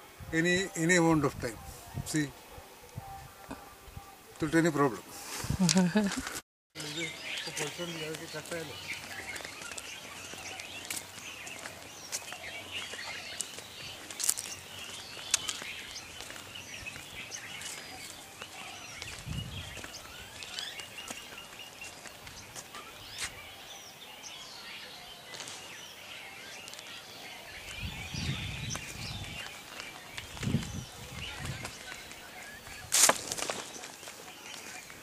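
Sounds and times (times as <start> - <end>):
small birds chirping: 6.8 - 35.0.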